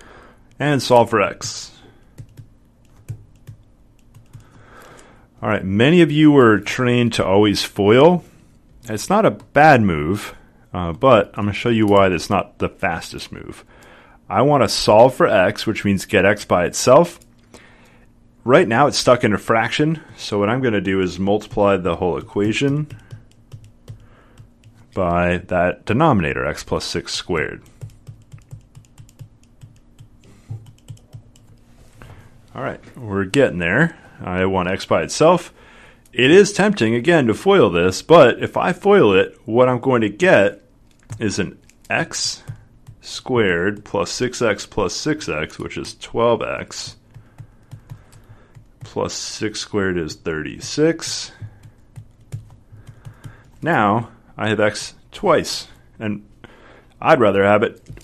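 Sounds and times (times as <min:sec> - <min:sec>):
stylus tapping on tablet screen: 0:47.2 - 0:48.9, 0:51.1 - 0:53.6.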